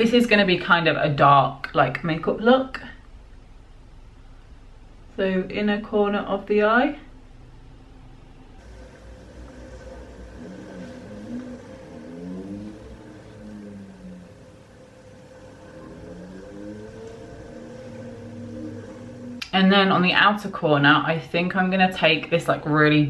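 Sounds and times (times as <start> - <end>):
motor humming: 8.6 - 19.6.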